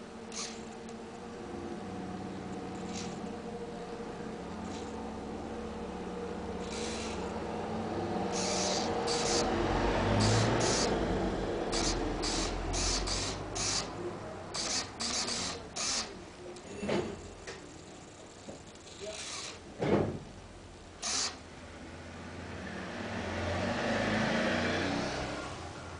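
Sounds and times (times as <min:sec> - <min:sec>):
short hissy bursts from valve: 0:08.3 - 0:09.5, 0:10.1 - 0:11.0, 0:11.7 - 0:16.2.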